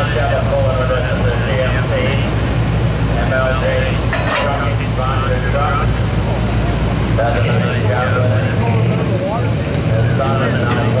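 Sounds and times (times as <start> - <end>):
pickup truck engine running: 0.0 - 11.0.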